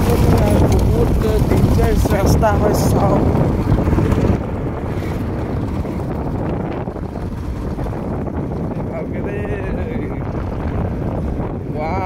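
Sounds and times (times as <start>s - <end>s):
motorbike engine running: 0.0s - 12.0s
wind buffeting microphone: 0.0s - 12.0s.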